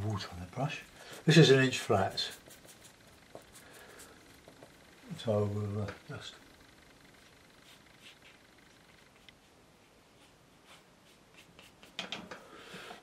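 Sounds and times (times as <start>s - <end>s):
brush strokes on paper: 0.0s - 4.6s, 7.6s - 12.0s.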